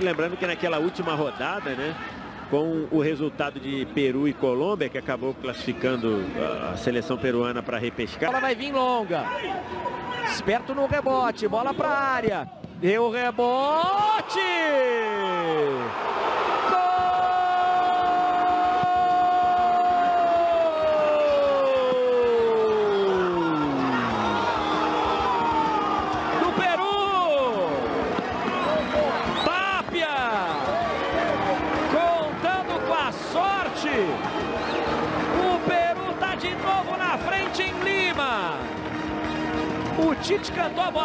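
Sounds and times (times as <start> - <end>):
fast excited commentary: 26.3 - 27.9, 28.5 - 34.2, 35.3 - 38.7.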